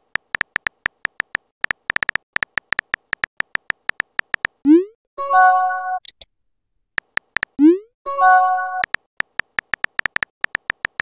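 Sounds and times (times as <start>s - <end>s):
keyboard key clicks: 0.1s - 4.6s, 7.0s - 7.6s, 8.8s - 11.0s.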